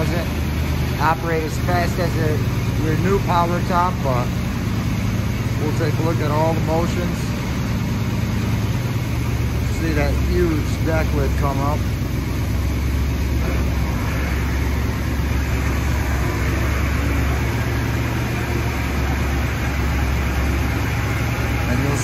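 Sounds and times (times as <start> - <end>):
car engine idling: 0.0 - 22.0
electric roof mechanism: 11.8 - 22.0.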